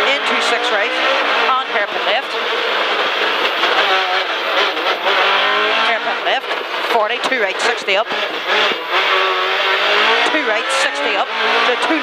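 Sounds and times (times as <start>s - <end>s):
car engine accelerating hard: 0.0s - 12.0s
road and tyre noise: 0.0s - 12.0s.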